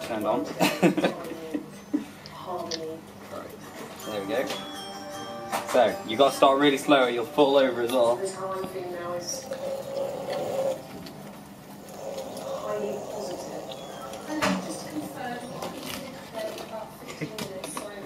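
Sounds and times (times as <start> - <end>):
electric motors whining: 7.2 - 16.8.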